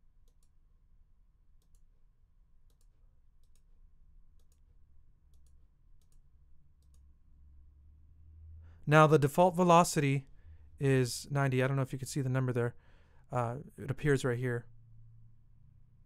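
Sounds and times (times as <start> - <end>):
computer mouse clicks: 0.2 - 0.6, 1.6 - 1.9, 2.6 - 4.7, 5.3 - 7.1.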